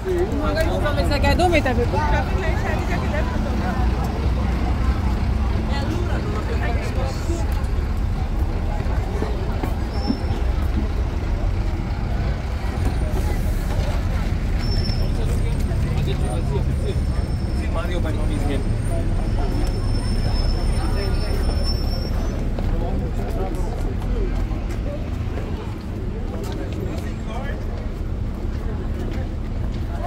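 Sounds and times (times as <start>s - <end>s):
crowd chatter: 0.0s - 30.0s
road traffic rumble: 0.0s - 30.0s.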